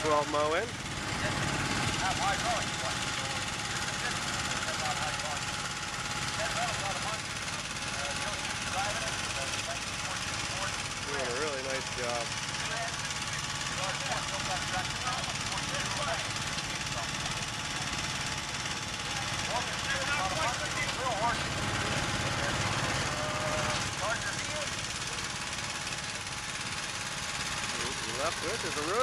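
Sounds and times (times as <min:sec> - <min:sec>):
small tractor engine running: 0:00.0 - 0:29.0.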